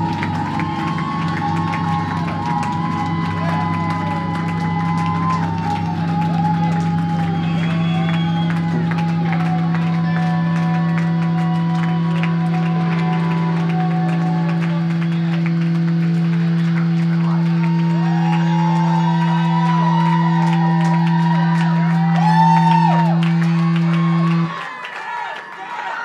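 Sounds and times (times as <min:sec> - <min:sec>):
electric guitar low drone: 0:00.0 - 0:24.6.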